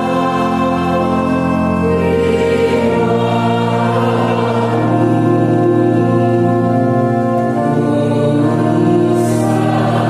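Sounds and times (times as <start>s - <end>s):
pipe organ playing a hymn: 0.0s - 10.0s.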